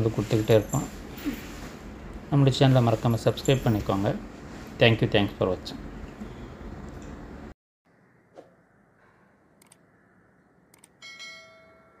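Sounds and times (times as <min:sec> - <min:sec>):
quick clicks: 0:09.6 - 0:09.8, 0:10.7 - 0:11.0.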